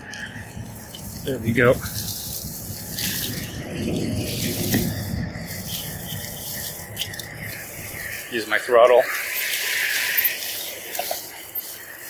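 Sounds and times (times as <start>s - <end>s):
grass rustling against bike: 0.0s - 12.0s.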